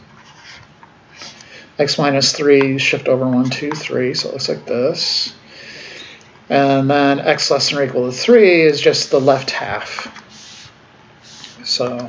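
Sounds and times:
person speaking: 1.3s - 12.0s
stylus scratching on tablet screen: 9.0s - 9.6s, 10.3s - 11.6s.

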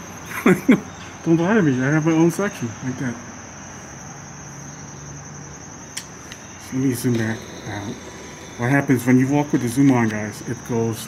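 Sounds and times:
crickets droning: 0.0s - 11.0s.

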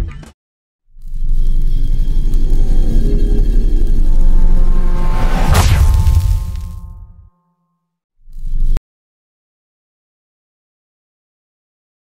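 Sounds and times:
deep cinematic rumble: 1.0s - 7.3s.

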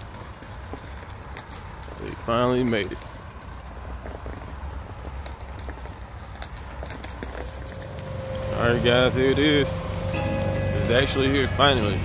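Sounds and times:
truck engine running: 6.8s - 12.0s.

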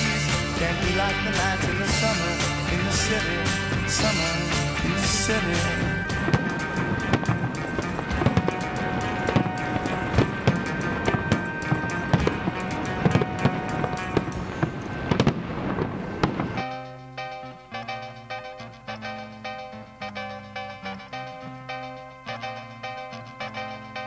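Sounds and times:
quiet music with steady notes: 0.0s - 24.0s
rock music: 0.0s - 24.0s
fireworks popping and banging: 3.9s - 16.8s.

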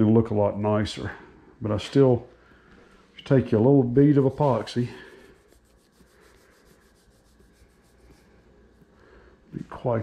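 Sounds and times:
palms rubbing putty: 4.0s - 8.9s.

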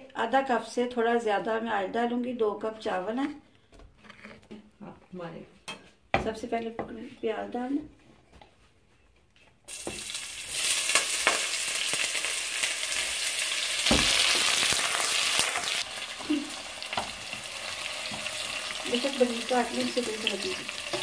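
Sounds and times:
spatula scraping a pot: 4.0s - 4.6s
onions sizzling in hot oil: 9.7s - 21.0s.

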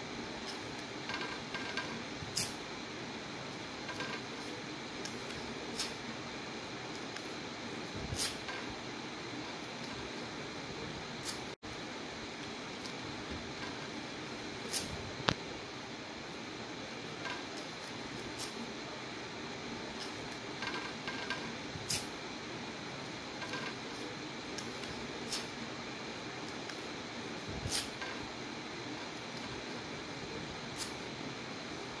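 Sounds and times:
steady background hiss: 0.0s - 32.0s.

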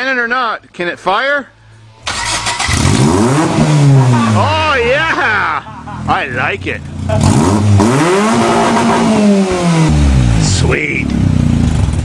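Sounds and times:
car engine revving hard: 2.1s - 4.5s, 6.9s - 12.0s.

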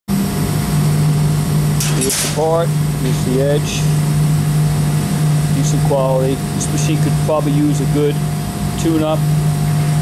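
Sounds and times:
cutting machine droning hum: 0.1s - 10.0s.

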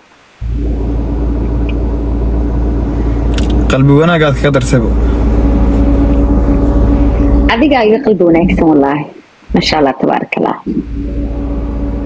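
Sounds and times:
faint steady hum: 0.0s - 12.0s
car engine rumble inside cabin: 0.4s - 8.7s, 10.8s - 12.0s.

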